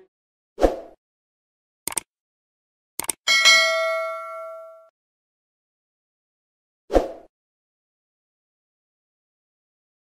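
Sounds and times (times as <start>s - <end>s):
mouse clicks: 1.9s - 2.1s, 3.0s - 3.2s
notification bell ding: 3.3s - 4.9s.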